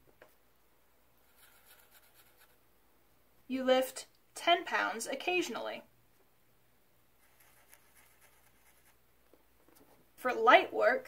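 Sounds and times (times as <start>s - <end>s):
marker scratching on paper: 1.2s - 2.6s, 7.2s - 9.0s.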